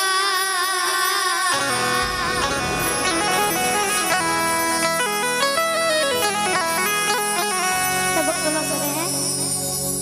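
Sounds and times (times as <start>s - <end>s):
keyboard and harmonium tones: 1.2s - 10.0s
dholak drumming: 1.6s - 9.4s.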